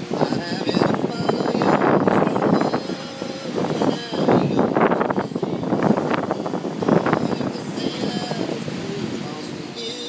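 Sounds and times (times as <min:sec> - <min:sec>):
small waves breaking on shore: 0:00.0 - 0:10.0
wind buffeting microphone: 0:00.0 - 0:10.0.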